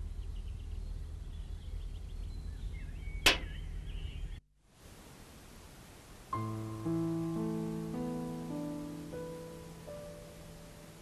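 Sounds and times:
faint bird chirps: 0.0 - 4.4
low outdoor rumble: 0.0 - 11.0.

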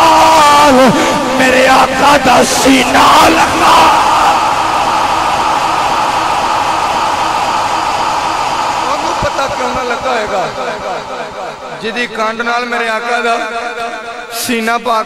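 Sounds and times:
preacher's raised voice: 0.0 - 5.1
crowd of men cheering: 0.0 - 11.9.

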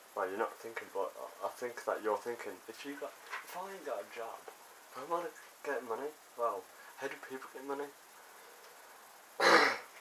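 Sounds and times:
man clearing throat: 9.4 - 9.9.

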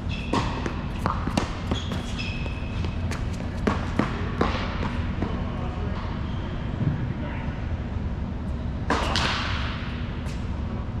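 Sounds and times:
steady low hum: 0.0 - 11.0
tennis ball impacts echoing: 0.2 - 1.9, 8.9 - 10.0.

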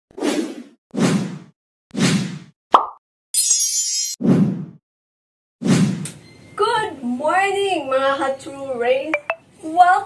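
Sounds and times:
sharp pop with falling tone: 2.7 - 3.0.

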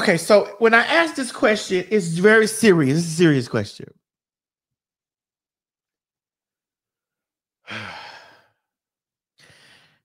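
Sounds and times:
faint breath: 9.4 - 10.0.

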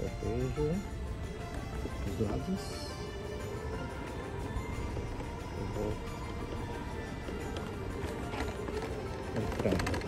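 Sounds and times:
background music: 0.0 - 10.0
wheelchair rolling over paving: 0.2 - 10.0.

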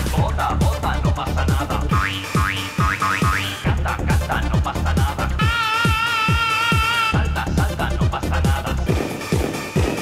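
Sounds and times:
low bass line: 0.0 - 5.5, 7.2 - 9.0
pitch-dropping kick drum: 0.0 - 10.0.

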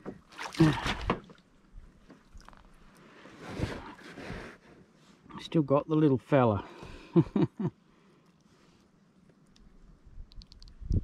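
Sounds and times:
water splashing: 0.0 - 1.6
rustle: 0.2 - 5.5.

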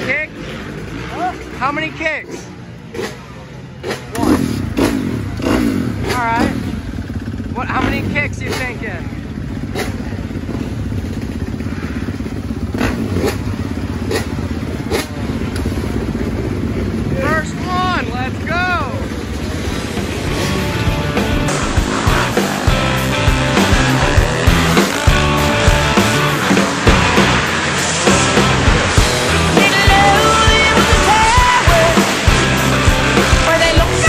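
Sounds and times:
dirt bike engine running: 0.0 - 34.0
person calling out: 1.1 - 1.5
rock music: 17.1 - 34.0.

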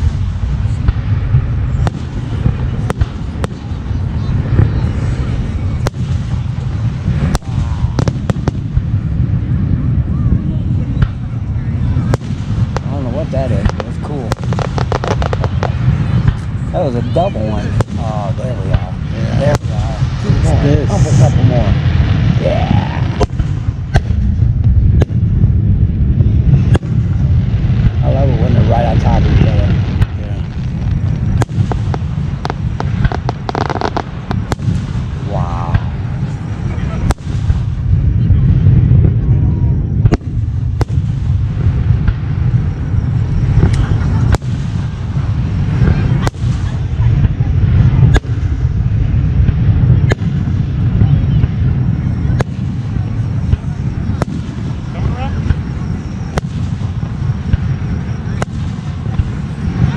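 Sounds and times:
fireworks bursting with sharp bangs: 0.0 - 59.9
low rumble: 0.0 - 59.9.

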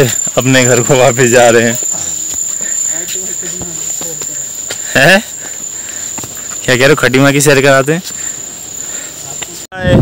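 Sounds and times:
high-pitched insect trill: 0.0 - 9.8.

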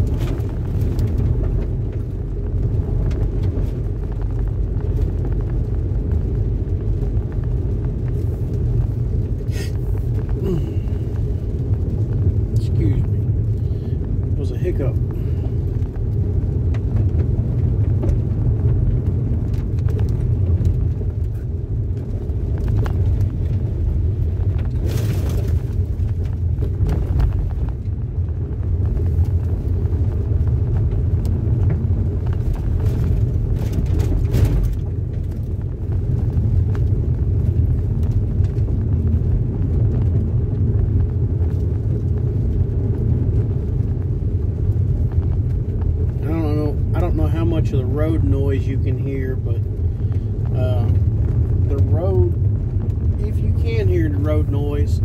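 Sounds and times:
road noise on gravel: 0.0 - 55.0.

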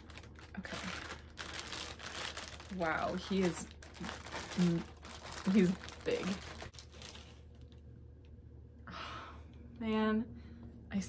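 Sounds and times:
packaging wrap crinkling: 0.0 - 7.8.

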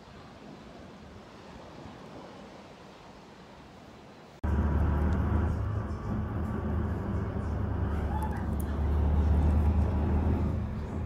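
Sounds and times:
faint outdoor hiss: 0.0 - 11.0
bus engine and road noise: 4.4 - 11.0.

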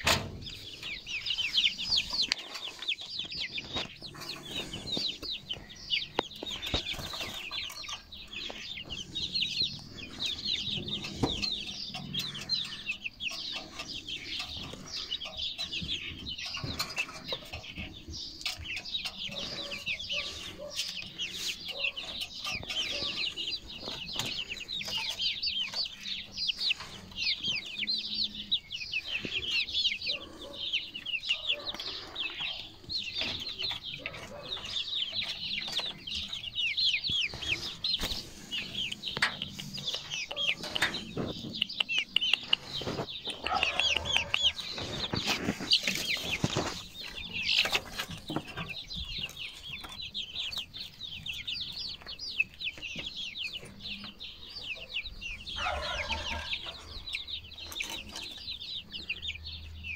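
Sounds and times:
chicks peeping: 0.0 - 59.9.

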